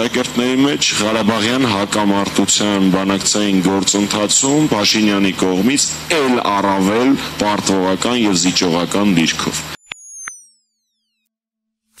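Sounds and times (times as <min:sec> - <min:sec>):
short electronic blip: 0:09.8 - 0:12.0.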